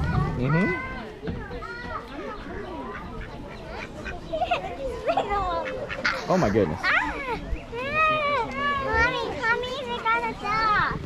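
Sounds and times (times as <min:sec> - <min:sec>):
voices: 0:00.0 - 0:11.0
ducks quacking: 0:02.4 - 0:06.8.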